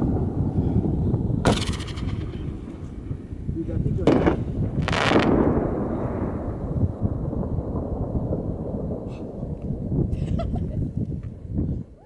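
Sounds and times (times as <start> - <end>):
fireworks bangs: 0.0 - 11.9
echoing rumble: 0.0 - 12.0.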